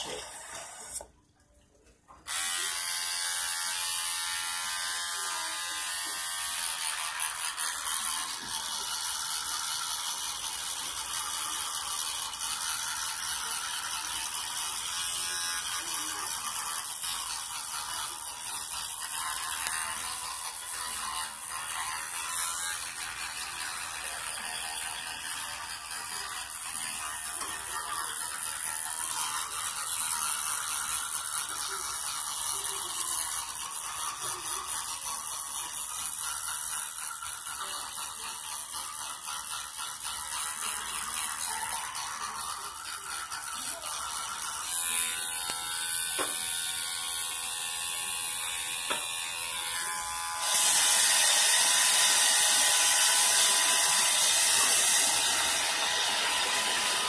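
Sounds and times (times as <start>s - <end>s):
electric toothbrush buzzing: 0.0s - 1.2s, 2.1s - 57.0s.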